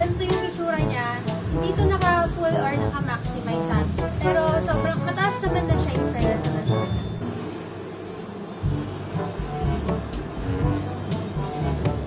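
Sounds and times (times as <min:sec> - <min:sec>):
background music: 0:00.0 - 0:07.4, 0:08.6 - 0:12.0
low steady rumble: 0:00.0 - 0:12.0.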